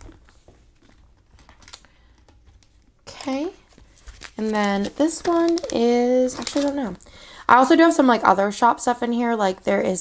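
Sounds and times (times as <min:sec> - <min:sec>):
plastic sleeve pages clicking: 0:01.3 - 0:02.7, 0:04.0 - 0:06.8.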